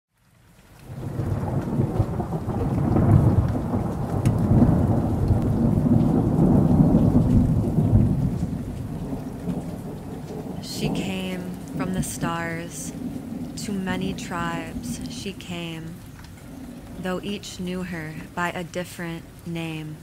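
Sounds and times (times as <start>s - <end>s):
rain: 0.1s - 20.0s
rolling thunder: 0.8s - 17.0s.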